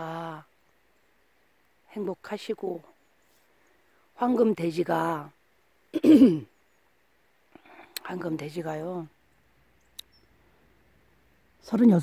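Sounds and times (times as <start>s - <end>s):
faint high chirp: 6.4s - 7.0s, 9.2s - 10.6s.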